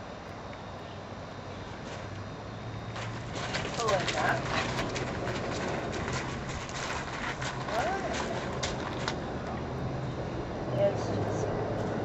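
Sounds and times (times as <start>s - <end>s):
hooves on gravel: 1.7s - 10.2s.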